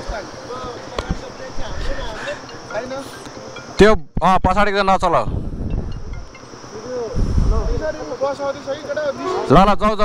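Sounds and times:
people talking: 0.0 - 5.4, 6.7 - 10.0.

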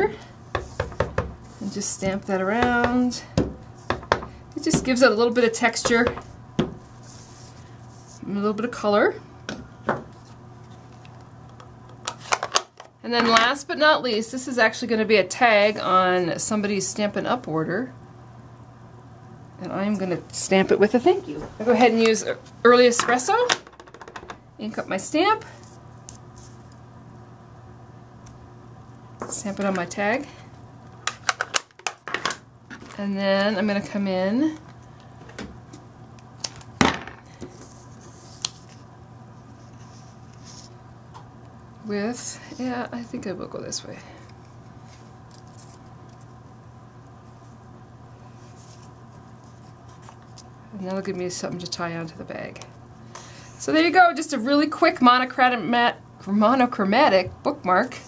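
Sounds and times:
low room hum: 0.0 - 58.0
craft supplies knocking on table: 36.8 - 37.2.

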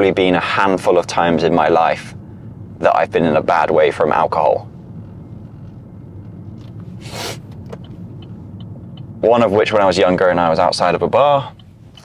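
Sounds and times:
car road noise rumble: 0.0 - 12.0
brief hiss: 7.0 - 7.6.

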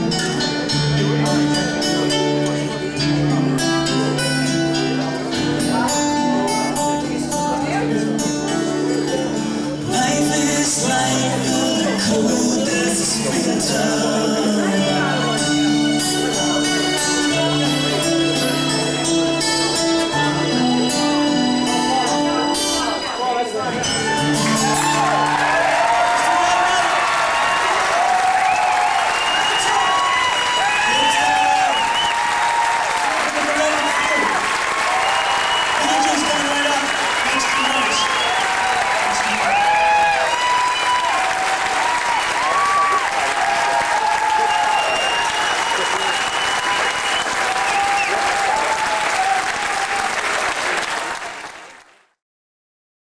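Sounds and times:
audience applauding and cheering: 23.9 - 52.2.

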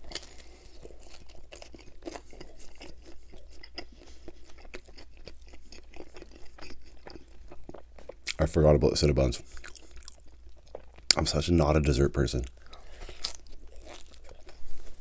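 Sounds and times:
chewing pizza crust: 0.0 - 8.6, 9.4 - 11.4, 12.4 - 15.0.

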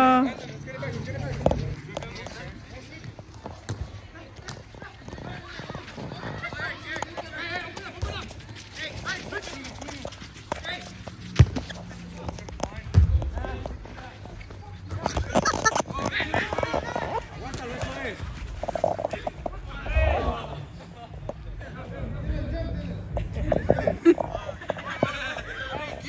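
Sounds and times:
players calling and shouting: 0.0 - 26.0
football being kicked: 11.4 - 11.7, 12.8 - 13.5.

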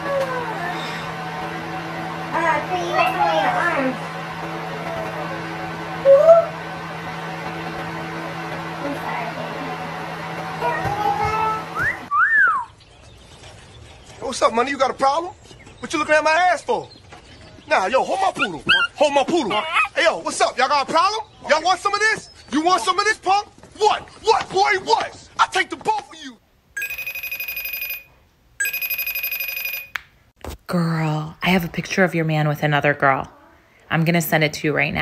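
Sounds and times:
wolf whistle: 11.8 - 12.7
telephone bell ringing: 26.8 - 30.0.

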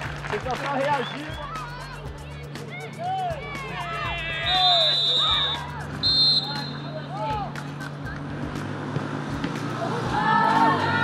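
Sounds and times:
people shouting: 2.6 - 7.5, 9.8 - 11.0.

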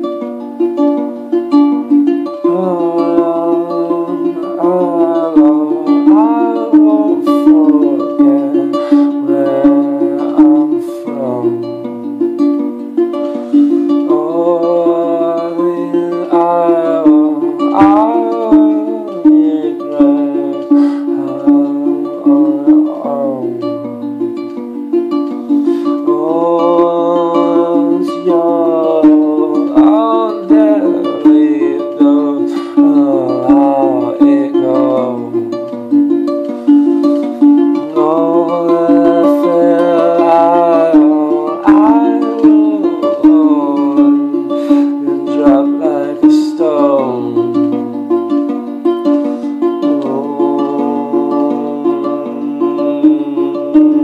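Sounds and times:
man singing long wavering notes: 0.0 - 12.4, 13.3 - 54.0
fingerpicked string instrument: 0.0 - 54.0.

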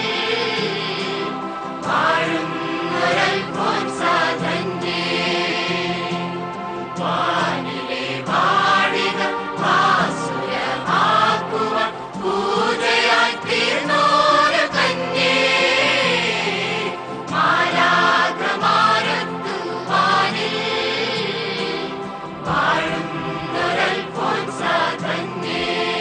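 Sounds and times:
choir singing a slow chant: 0.0 - 26.0
held accompaniment: 0.0 - 26.0.

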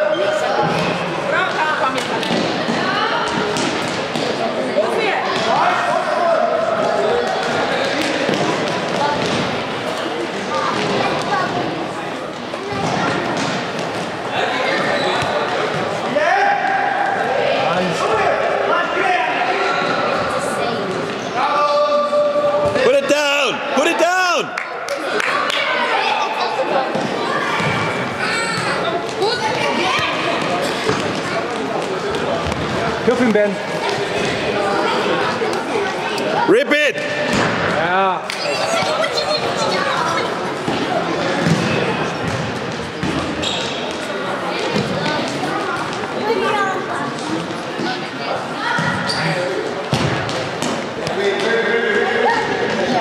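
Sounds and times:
children shouting and calling: 23.8 - 31.6, 38.3 - 41.1, 44.6 - 47.2.

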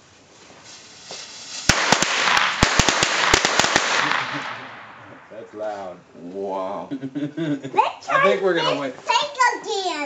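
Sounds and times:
firecrackers crackling: 0.0 - 5.9
soft hiss: 0.0 - 10.0.

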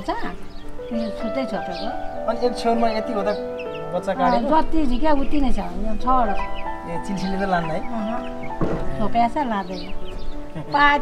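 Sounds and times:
music of long held notes: 0.2 - 11.0.

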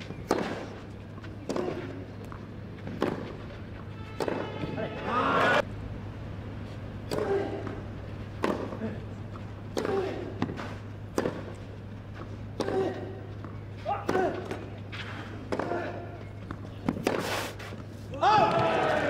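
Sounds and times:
steady low hum: 0.0 - 18.2
tennis racquet hitting ball: 0.1 - 0.8, 1.4 - 4.8, 7.1 - 8.9, 9.7 - 11.7, 12.5 - 17.4.

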